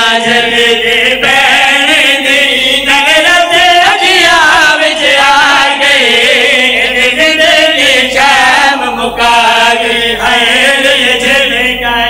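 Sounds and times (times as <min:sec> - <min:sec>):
men chanting a lament into microphones: 0:00.0 - 0:12.0.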